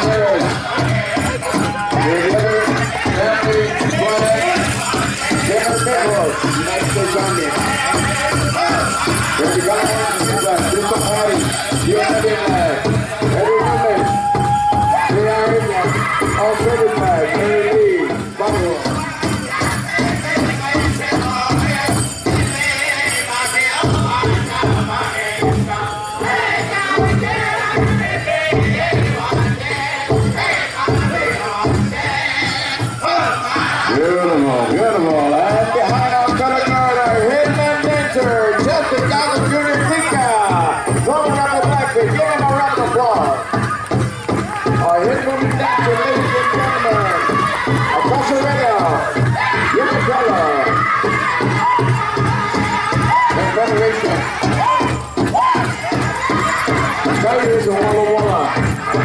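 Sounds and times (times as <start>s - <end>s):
big drum beats: 0.0s - 59.0s
high-pitched group singing: 0.0s - 59.0s.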